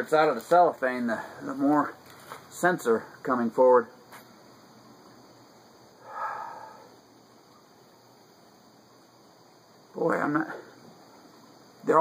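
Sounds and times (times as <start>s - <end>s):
man sniffing: 6.0s - 7.0s.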